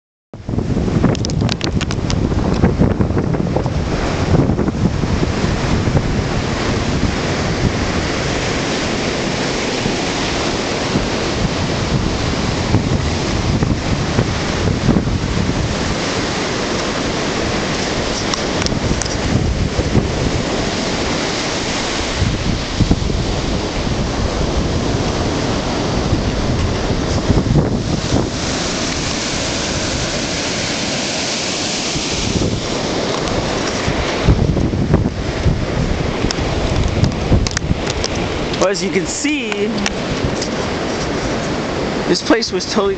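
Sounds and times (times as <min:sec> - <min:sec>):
ocean surf: 0:00.4 - 0:42.9
wind blowing over microphone: 0:00.4 - 0:42.9.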